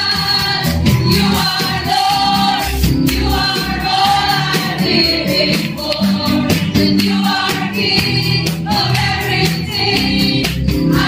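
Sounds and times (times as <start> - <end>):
congregation singing: 0.0 - 11.0
steady percussion beat: 0.0 - 11.0.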